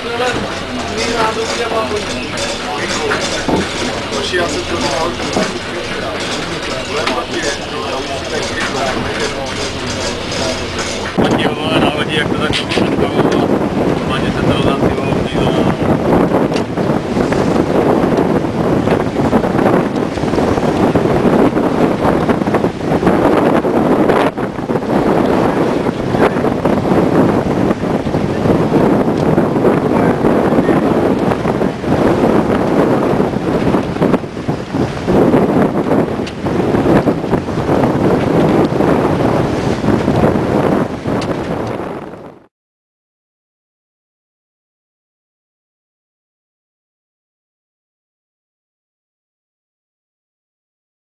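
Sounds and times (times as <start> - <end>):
sea water rushing along hulls: 0.0 - 42.5
wind buffeting microphone: 0.0 - 42.5.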